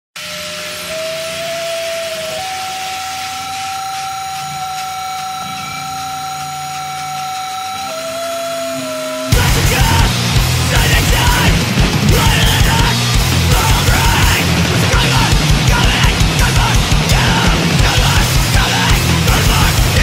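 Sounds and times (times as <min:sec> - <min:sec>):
amplifier hiss: 0:00.2 - 0:12.0
amplifier feedback whine: 0:00.2 - 0:20.0
heavy band with distorted guitars: 0:00.2 - 0:20.0.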